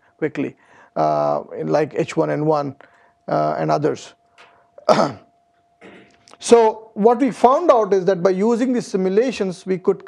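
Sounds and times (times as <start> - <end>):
man coughing: 4.8 - 6.2.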